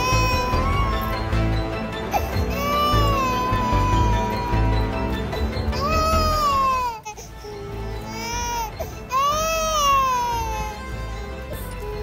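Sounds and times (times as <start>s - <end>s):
baby crying: 0.0s - 12.0s
background music: 0.0s - 12.0s.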